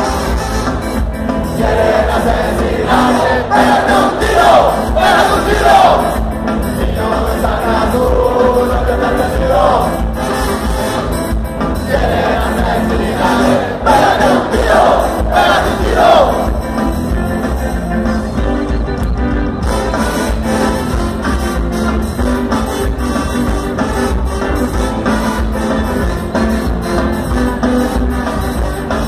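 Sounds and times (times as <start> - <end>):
crowd voices: 0.0 - 29.0
ska band playing live: 0.0 - 29.0.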